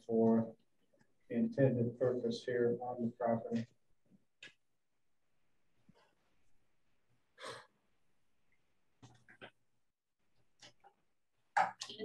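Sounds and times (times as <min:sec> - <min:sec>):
short breath: 0:07.4 - 0:07.8.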